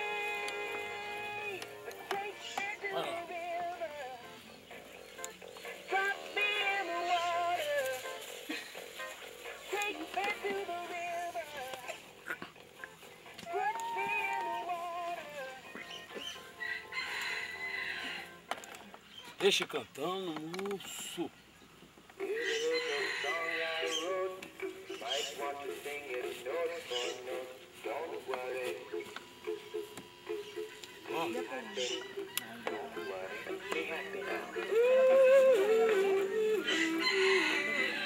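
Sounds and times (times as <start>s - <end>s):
singing toy with musical backing: 0.0s - 18.4s, 22.2s - 38.0s.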